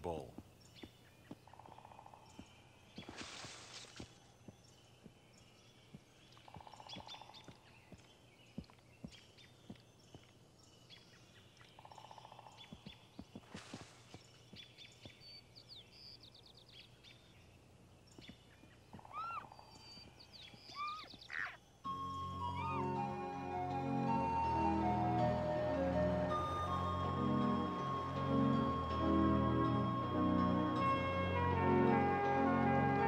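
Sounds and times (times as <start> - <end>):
hooves stepping through brush: 0.7 - 10.4, 12.6 - 15.4
rising and falling calls: 19.0 - 20.0, 20.6 - 21.6
music: 21.9 - 33.0.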